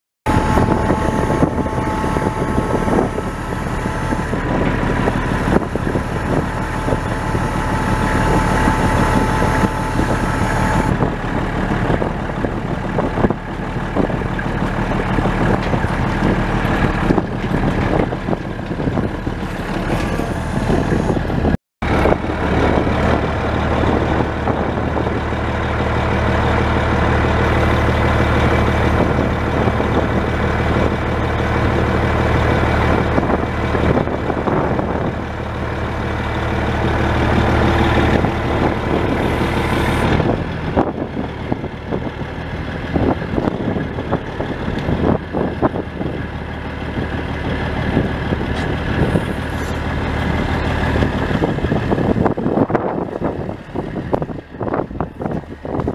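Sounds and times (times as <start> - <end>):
truck engine running: 0.2 - 55.9.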